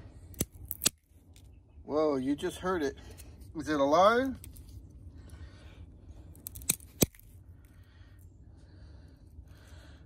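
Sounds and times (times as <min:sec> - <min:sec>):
plant stem snapping: 0:00.3 - 0:01.5, 0:06.4 - 0:07.3.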